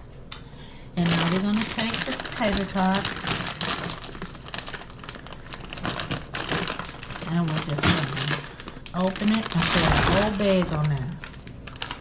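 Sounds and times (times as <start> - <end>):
plastic bag crinkling: 1.0 - 12.0.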